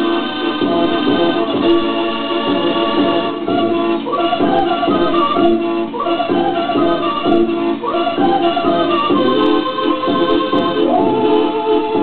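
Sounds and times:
mechanical dance organ music: 0:00.0 - 0:12.0.

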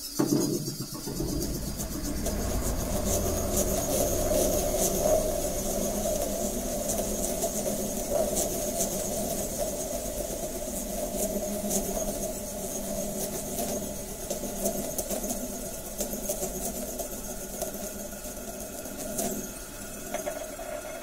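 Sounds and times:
low engine-like drone: 0:00.0 - 0:21.0.

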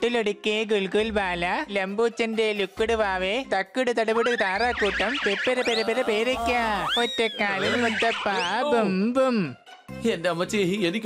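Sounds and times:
shrill cartoon voice crying: 0:05.6 - 0:08.9.

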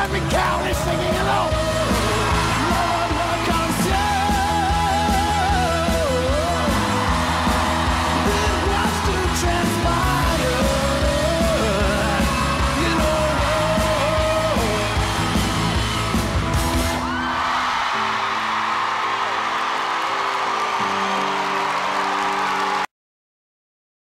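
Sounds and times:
man singing rock song: 0:00.0 - 0:16.3
rock backing music: 0:00.0 - 0:22.8
audience cheering: 0:00.0 - 0:22.9.

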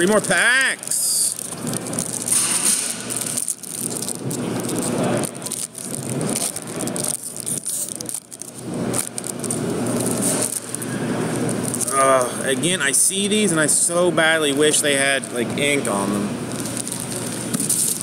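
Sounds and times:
wrappers crinkling: 0:00.0 - 0:18.0.

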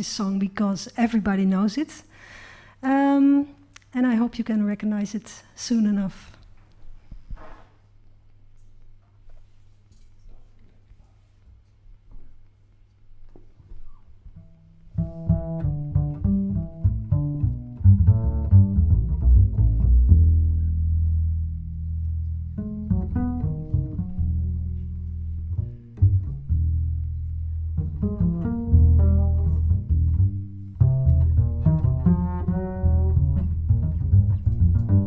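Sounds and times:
low bass line: 0:14.4 - 0:35.0.

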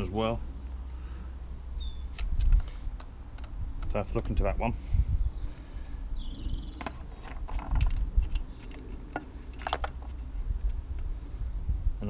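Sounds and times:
steady low rumble: 0:00.0 - 0:12.0
clicks and knocks of plastic housing: 0:06.8 - 0:10.2.

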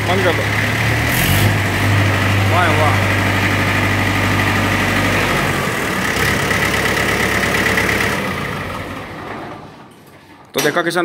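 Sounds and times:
tractor diesel engine idling: 0:00.0 - 0:09.8.

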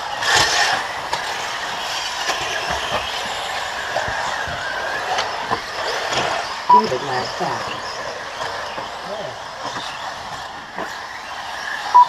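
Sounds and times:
rc car motors whining: 0:00.0 - 0:12.0.

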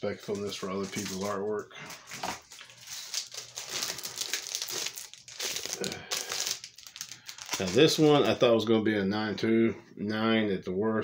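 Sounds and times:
plastic packaging crinkling: 0:00.1 - 0:08.5.

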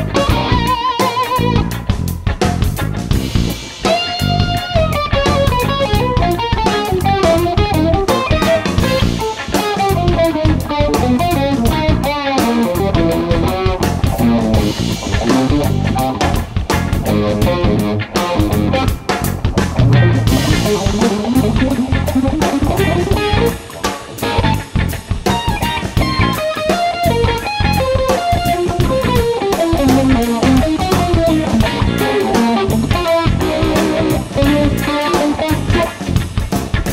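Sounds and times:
electric guitar lead: 0:00.0 - 0:36.9
funk rock band playing: 0:00.0 - 0:36.9.

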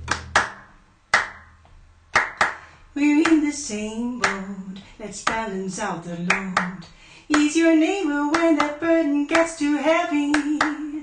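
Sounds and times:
hand claps: 0:00.0 - 0:03.5, 0:04.2 - 0:04.5, 0:05.2 - 0:05.5, 0:06.3 - 0:07.6, 0:08.3 - 0:11.0.

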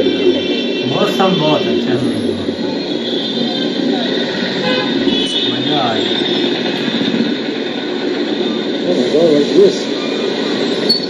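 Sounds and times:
vehicle horn tooting: 0:00.0 - 0:07.3
bus engines: 0:00.0 - 0:11.0
motorbike engines: 0:00.0 - 0:11.0
voices of people passing: 0:00.0 - 0:11.0.

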